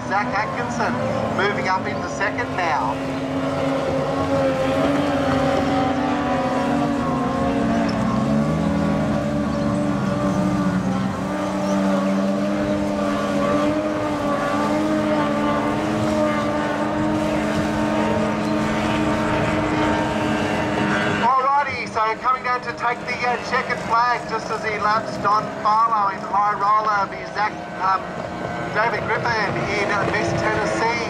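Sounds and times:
lower engine tone: 0.0s - 31.0s
outboard engines at full throttle: 0.0s - 31.0s.

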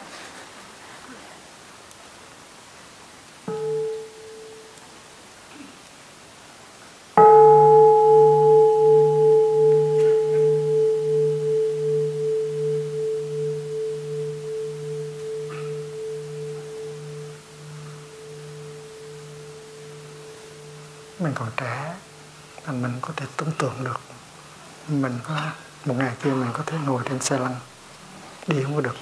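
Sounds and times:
singing bowl ringing: 3.5s - 4.8s, 7.2s - 23.8s.

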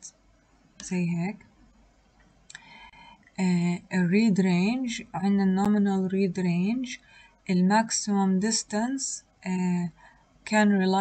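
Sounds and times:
woman's voice: 0.8s - 1.4s, 3.4s - 11.0s.

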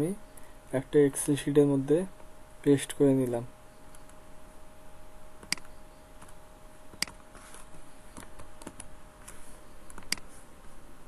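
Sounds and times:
faint steady hum: 0.0s - 11.0s
keyboard and mouse clicks: 5.4s - 7.2s, 8.1s - 8.9s, 9.8s - 10.3s.

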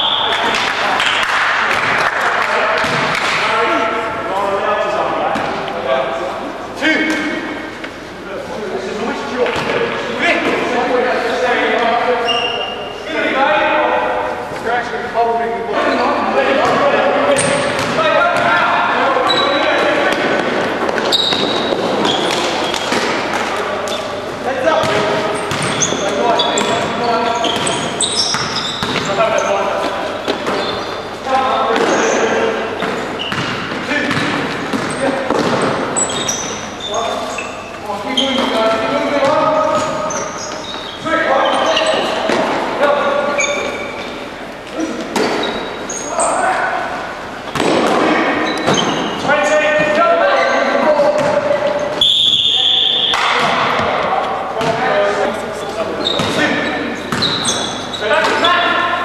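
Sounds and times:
basketball bouncing on court: 2.8s - 3.2s, 17.4s - 18.6s, 24.8s - 29.5s, 32.8s - 36.5s, 51.1s - 51.5s, 57.1s - 57.7s.

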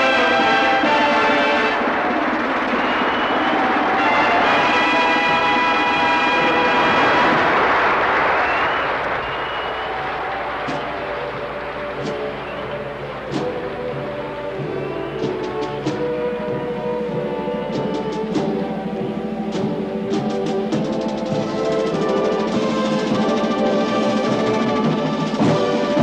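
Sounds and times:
bugle chords: 0.0s - 26.0s
low brass chords: 0.0s - 26.0s.

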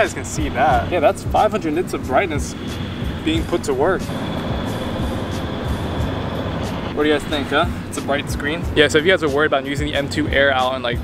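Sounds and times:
steady rushing noise: 0.0s - 10.2s.

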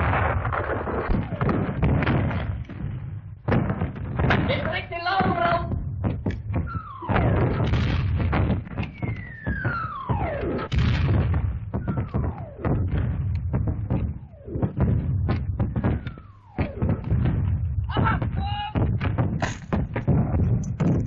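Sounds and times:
gunfire cracks: 0.0s - 5.6s, 6.2s - 18.2s
artillery shells whistling: 0.0s - 21.0s
explosions: 0.0s - 21.0s.

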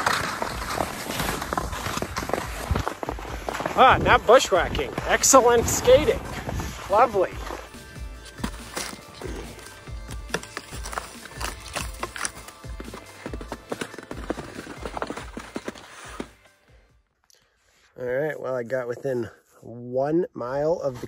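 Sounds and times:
skis clattering over snow and branches: 0.0s - 16.6s
background music: 0.0s - 17.5s.

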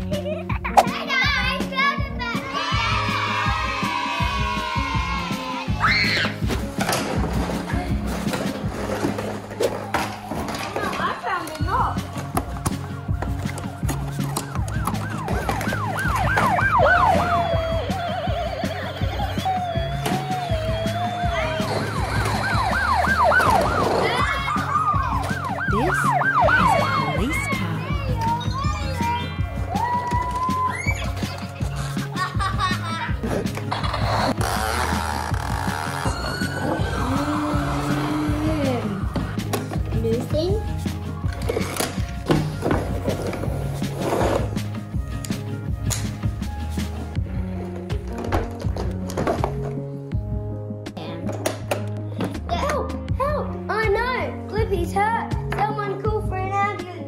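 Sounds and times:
upbeat background music: 0.0s - 57.0s
toy electronic siren: 14.4s - 19.8s, 21.6s - 27.1s.

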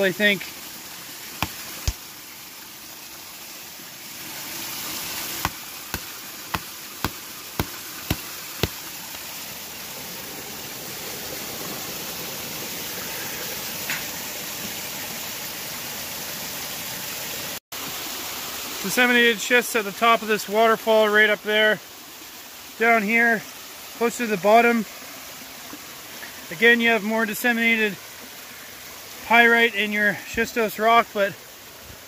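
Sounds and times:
creek rushing: 0.0s - 15.9s, 17.8s - 32.0s
rock pick striking rock: 1.4s - 2.0s, 5.4s - 8.9s.

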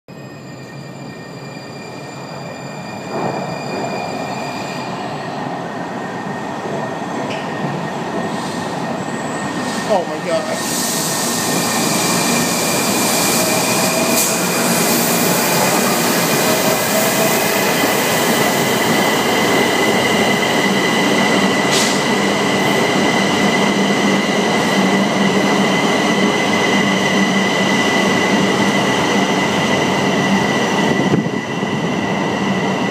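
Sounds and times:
subway train wheels rushing: 0.1s - 32.9s.

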